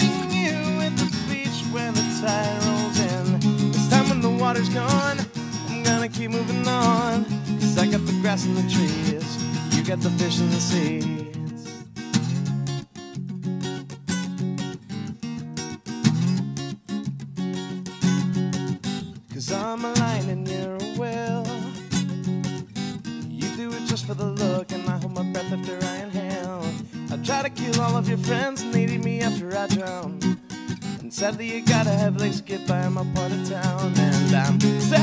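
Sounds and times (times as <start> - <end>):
acoustic guitar strumming: 0.0 - 35.0.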